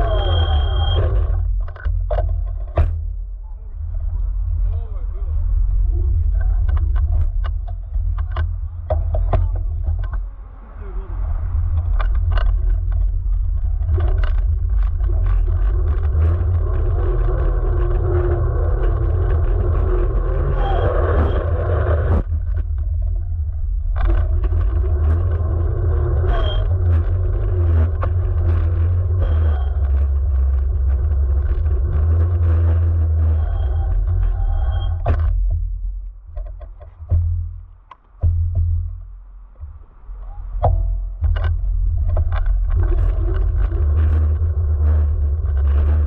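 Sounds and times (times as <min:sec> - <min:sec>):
tyre noise on rough asphalt: 0:00.0 - 0:46.0
wind rumble on microphone: 0:00.0 - 0:46.0
knocks and rattles: 0:01.0 - 0:03.3, 0:05.4 - 0:10.5, 0:11.4 - 0:46.0.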